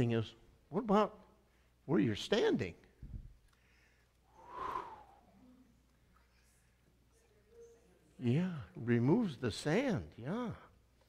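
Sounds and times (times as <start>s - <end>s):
breathy exhale: 3.6s - 5.3s.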